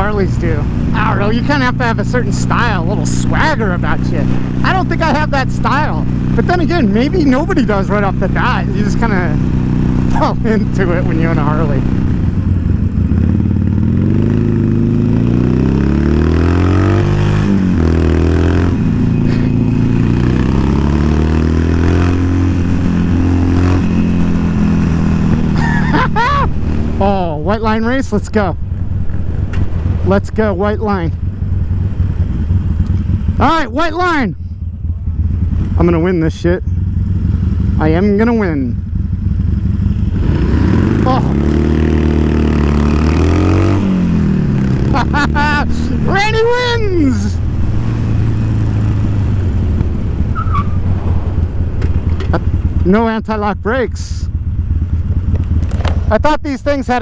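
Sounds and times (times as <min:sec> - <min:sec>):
motorcycle engine accelerating: 0:00.0 - 0:57.0
wind rushing: 0:45.6 - 0:52.9.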